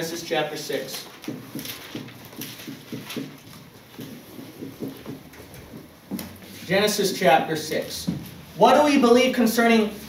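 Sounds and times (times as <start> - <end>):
marker writing on whiteboard: 0.0 - 9.2.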